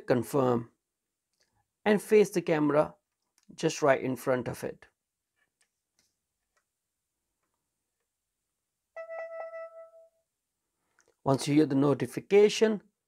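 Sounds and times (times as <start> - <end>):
short electronic chime: 9.0 - 10.2.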